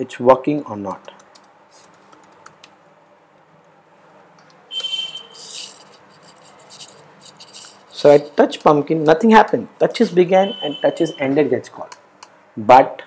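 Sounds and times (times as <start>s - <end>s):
computer mouse clicking: 0.5s - 7.8s
scratchy rub of mouse: 5.1s - 8.4s.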